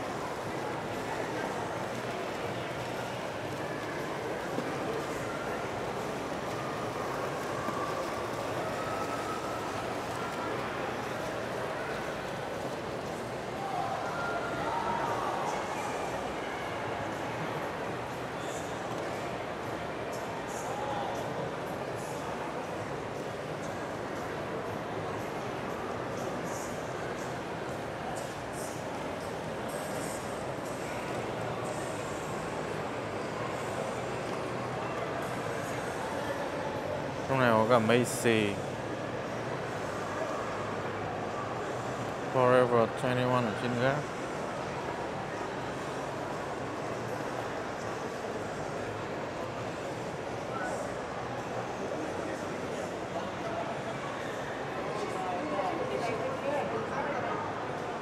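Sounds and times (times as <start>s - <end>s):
shopping mall ambient noise: 0.0s - 58.0s.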